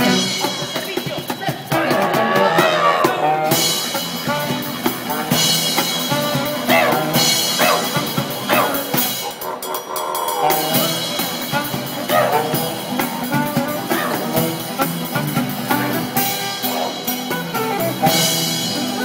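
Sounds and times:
street band playing swing music: 0.0s - 19.0s.

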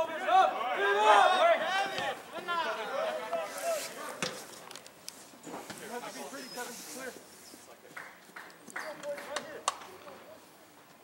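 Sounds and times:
distant players calling out: 0.0s - 4.2s.

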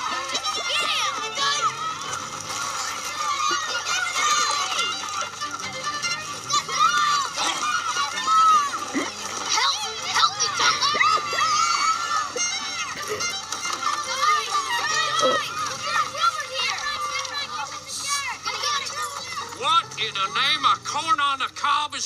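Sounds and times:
light music score: 0.0s - 21.0s
boys shouting excitedly: 0.0s - 22.0s.

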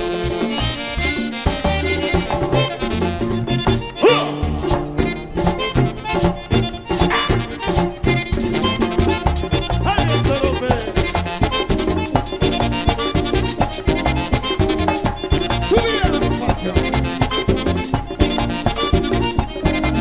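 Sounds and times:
bass: 0.0s - 20.0s
button accordion melody: 0.0s - 20.0s
fast percussion rhythm: 0.0s - 20.0s.

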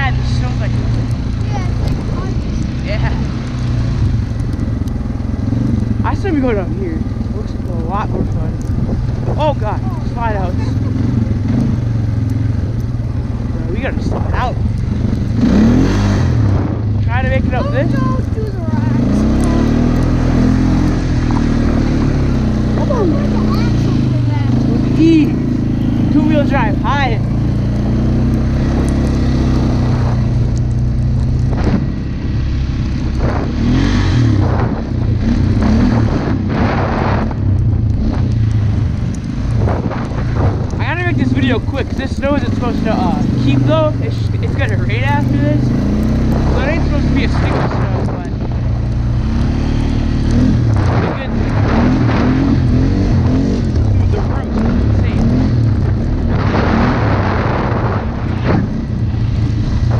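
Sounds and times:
four-wheeler engine running: 0.0s - 59.9s.

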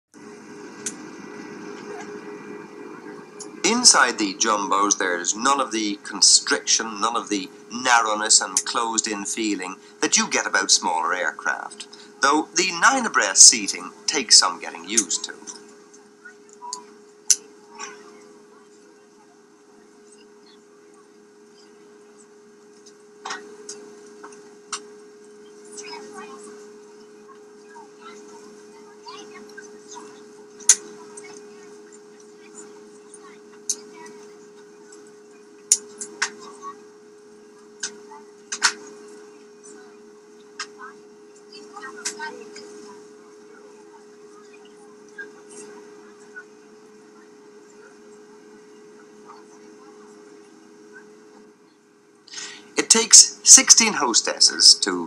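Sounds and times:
faint steady hum: 0.1s - 55.0s
indistinct passenger chatter: 0.1s - 55.0s
jet engines droning in cabin: 0.1s - 55.0s.

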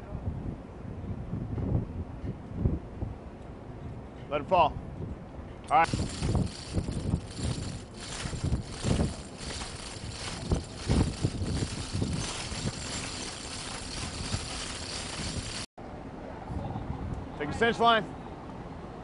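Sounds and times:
wind buffeting microphone: 0.0s - 3.3s, 4.8s - 15.7s.

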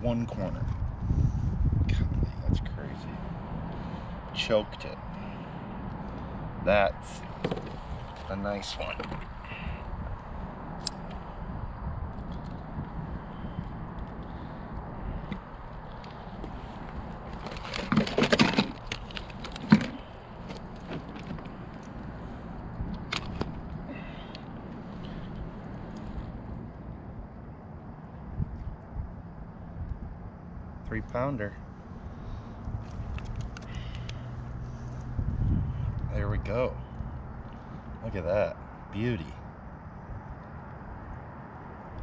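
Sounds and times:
steady low rumble: 0.0s - 42.0s
rustling and small knocks: 7.2s - 9.4s, 15.2s - 23.8s.

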